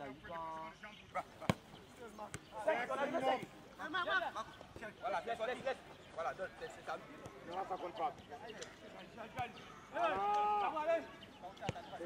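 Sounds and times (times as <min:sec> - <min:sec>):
football kicked: 0:01.4 - 0:02.6.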